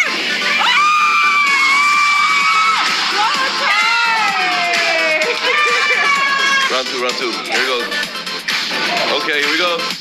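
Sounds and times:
music playing: 0.0s - 10.0s
high excited whoop: 0.5s - 6.7s.

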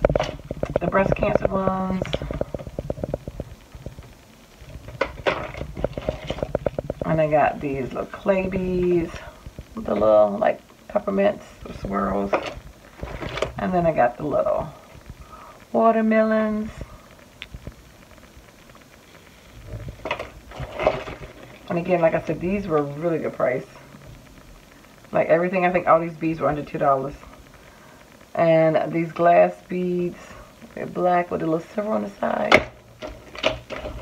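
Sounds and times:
packaging rustle: 1.9s - 7.1s, 12.2s - 13.6s, 19.0s - 21.8s, 33.0s - 34.0s.

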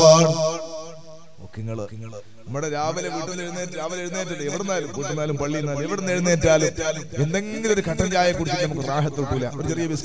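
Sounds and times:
man speaking: 0.0s - 0.8s, 1.4s - 10.0s
man chanting: 0.0s - 10.0s.

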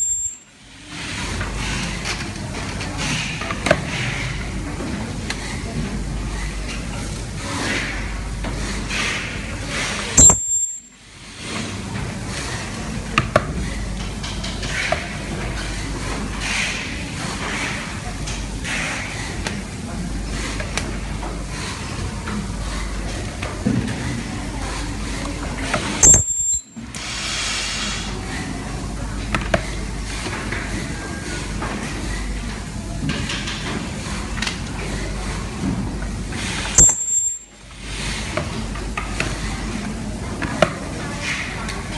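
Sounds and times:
brief high-pitched ring: 0.0s - 0.5s, 10.2s - 10.9s, 26.0s - 26.8s, 36.8s - 37.5s
steady background noise: 0.0s - 41.9s
compressed air hissing: 27.0s - 28.2s.

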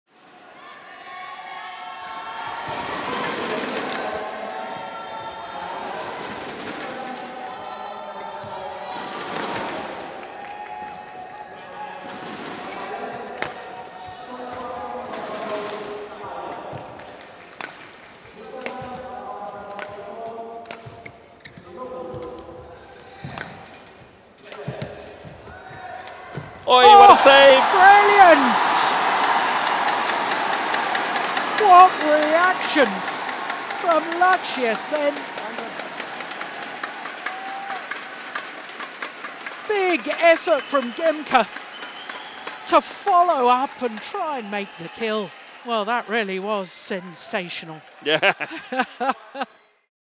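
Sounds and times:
crowd in hall: 0.1s - 49.9s.

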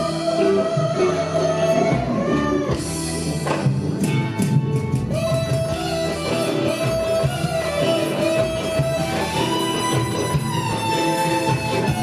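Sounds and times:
bass: 0.0s - 12.0s
strummed electric guitars: 0.0s - 12.0s.

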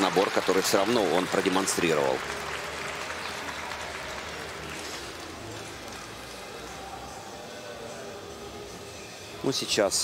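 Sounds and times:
audience applauding: 0.0s - 6.1s
man's voice: 7.1s - 10.0s.

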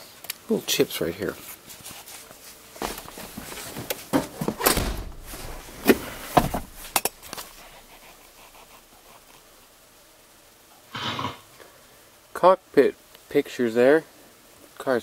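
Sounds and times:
rustling: 1.2s - 10.8s.

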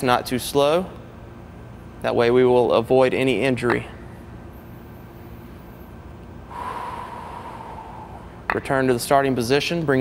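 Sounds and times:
man breathing: 6.4s - 8.5s.

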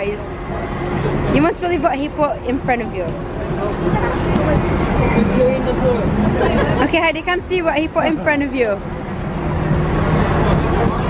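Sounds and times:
engine hum: 0.0s - 11.0s
murmur of passing voices: 0.0s - 11.0s
traffic rumble: 0.0s - 11.0s.

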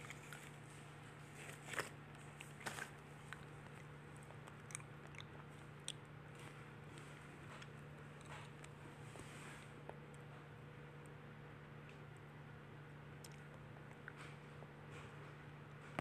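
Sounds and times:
faint low hum: 0.0s - 16.0s.

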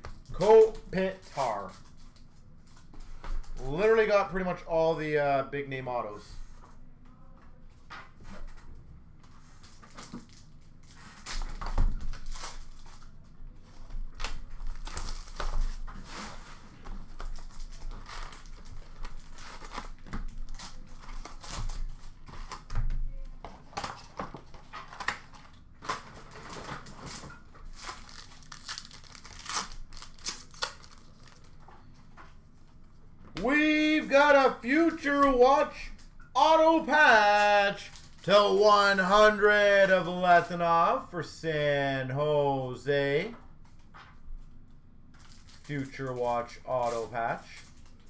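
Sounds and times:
wrappers and cardboard tearing: 9.4s - 22.7s, 23.6s - 31.6s, 37.1s - 38.5s, 45.2s - 48.0s.

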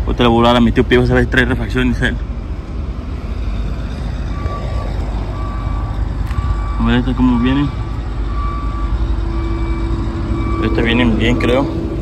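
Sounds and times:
low engine rumble: 0.0s - 12.0s
reversing alarm beeping: 3.2s - 12.0s.

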